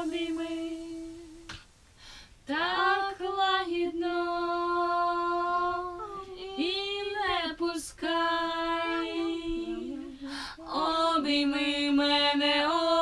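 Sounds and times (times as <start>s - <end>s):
wordless voice singing sliding notes: 0.0s - 1.7s, 2.5s - 13.0s.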